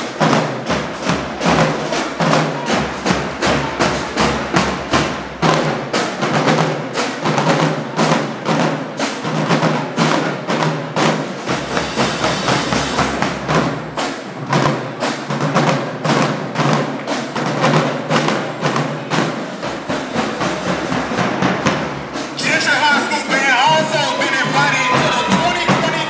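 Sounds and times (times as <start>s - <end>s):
cymbals: 0.0s - 26.0s
snare drums: 0.0s - 26.0s.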